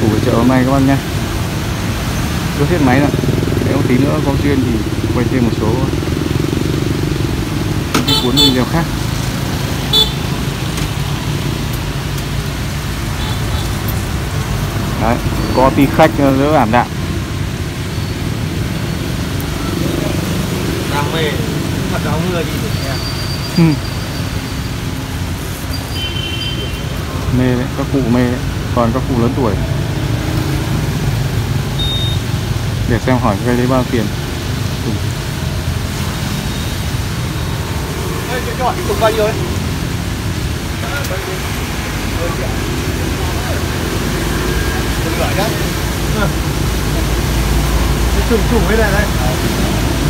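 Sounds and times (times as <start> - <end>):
rain hiss: 0.0 - 50.0
road traffic rumble: 0.0 - 50.0.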